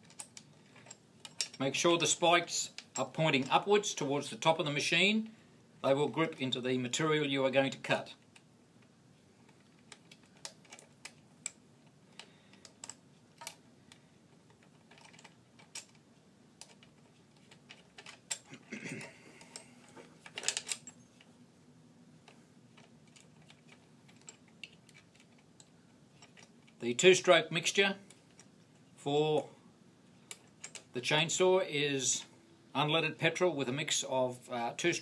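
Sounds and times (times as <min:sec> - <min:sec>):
metal parts clattering: 0:00.0 - 0:01.6, 0:17.4 - 0:21.0
faint steady hum: 0:00.0 - 0:35.0.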